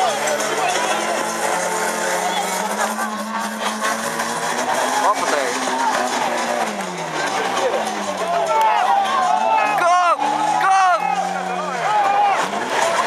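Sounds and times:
crowd voices: 0.0s - 13.0s
racing car engines: 0.0s - 13.0s.

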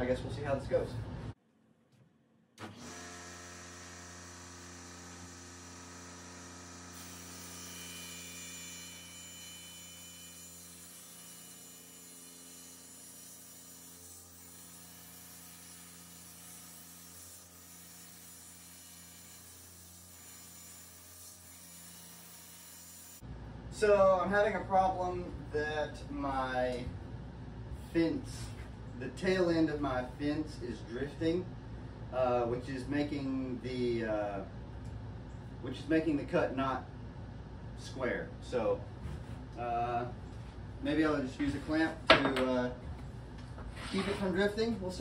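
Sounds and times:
table saw ripping wood: 2.6s - 23.2s.

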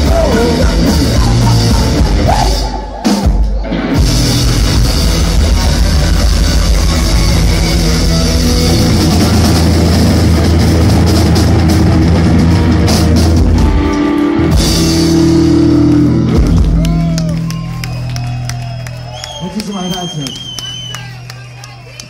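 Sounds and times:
rock band playing loud: 0.0s - 22.0s
crowd shouting and whooping: 15.5s - 22.0s.

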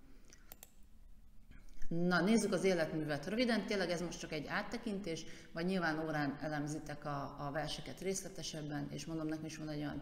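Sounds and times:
computer mouse clicks: 0.3s - 0.8s.

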